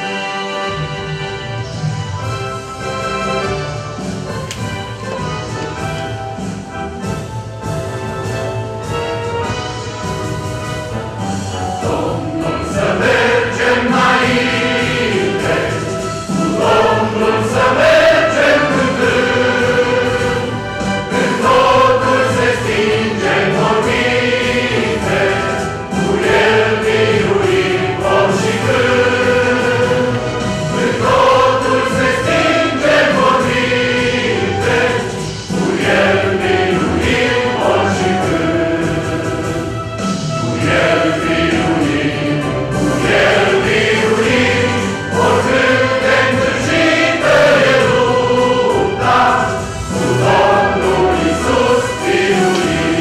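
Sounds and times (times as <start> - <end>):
mixed choir singing a hymn: 0.0 - 4.3, 10.9 - 53.0.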